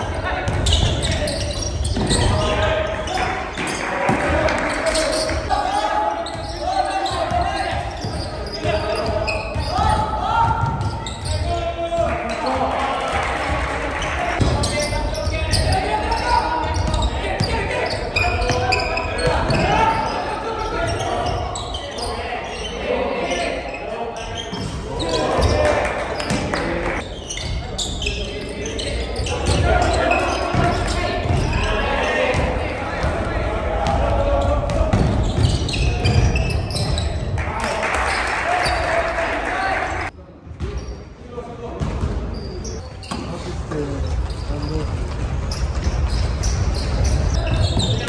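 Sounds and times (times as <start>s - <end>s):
players' voices calling out: 0.0s - 40.1s
ball bouncing on wooden court: 7.2s - 11.5s, 32.3s - 37.2s.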